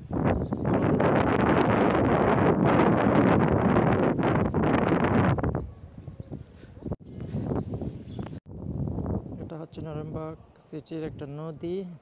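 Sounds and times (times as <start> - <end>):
wind buffeting microphone: 0.0 - 11.7.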